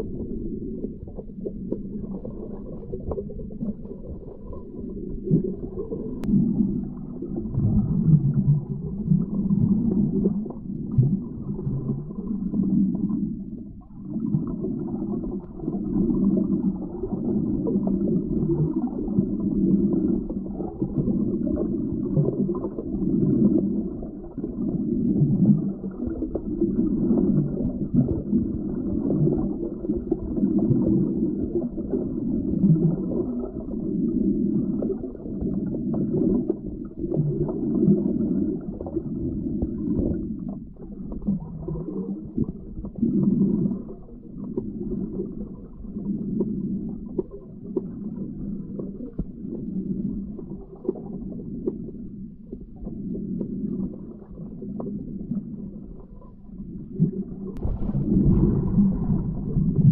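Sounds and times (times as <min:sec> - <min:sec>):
underwater river rumble: 0:00.0 - 0:59.9.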